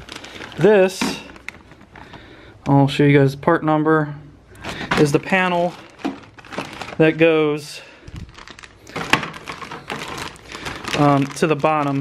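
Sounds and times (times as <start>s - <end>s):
plastic bag crinkling: 0.0s - 2.4s, 4.5s - 12.0s.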